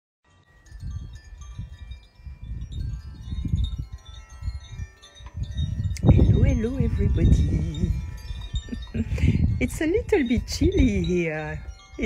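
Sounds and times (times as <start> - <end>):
wind chimes ringing: 0.3 - 12.0
low rumble on microphone: 0.8 - 12.0.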